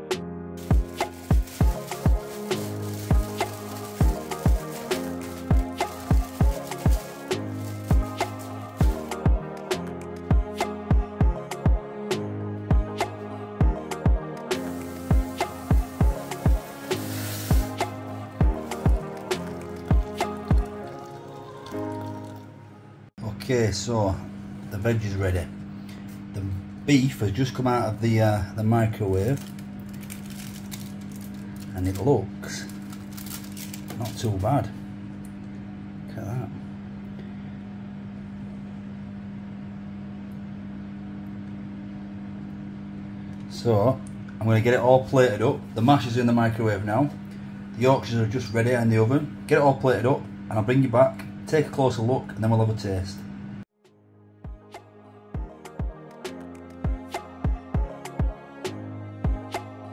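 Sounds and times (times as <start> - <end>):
music with deep kick drum beat: 0.2 - 2.2, 5.5 - 11.9, 12.7 - 20.8, 54.4 - 54.8, 55.4 - 59.8
microwave oven humming: 0.6 - 53.7.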